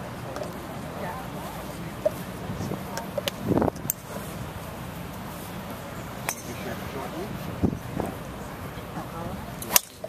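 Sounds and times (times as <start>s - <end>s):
chatter of onlookers: 0.0s - 10.0s
golf club striking ball: 6.2s - 6.8s, 9.6s - 10.0s.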